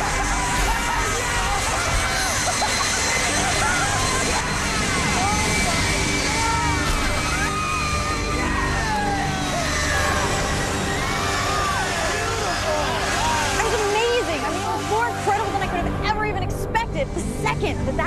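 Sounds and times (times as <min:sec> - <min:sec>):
people shouting and whooping: 0:00.0 - 0:15.9
background music: 0:00.0 - 0:18.0.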